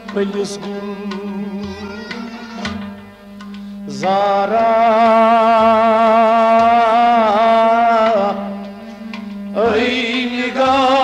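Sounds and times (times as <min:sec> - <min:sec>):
person singing with vibrato: 0:00.0 - 0:03.0
steady drone: 0:00.0 - 0:11.0.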